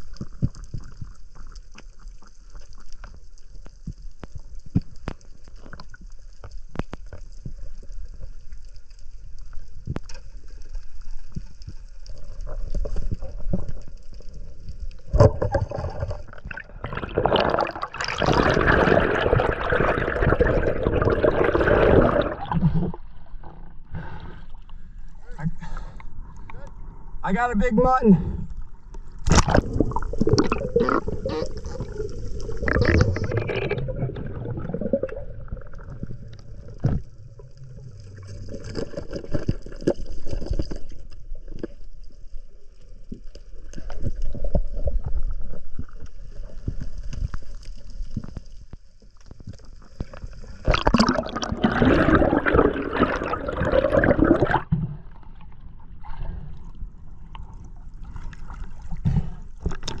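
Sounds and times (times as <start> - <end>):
muffled underwater rushing: 11.2 - 27.1, 29.2 - 42.2, 49.9 - 60.0
splashing water: 29.2 - 37.2.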